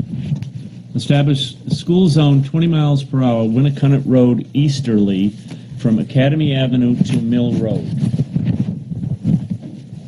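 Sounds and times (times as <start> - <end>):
microphone handling noise: 0.0 - 10.0.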